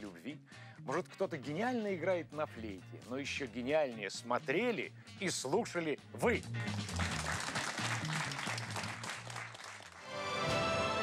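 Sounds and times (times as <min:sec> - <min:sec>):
studio audience applauding: 0:06.6 - 0:11.0.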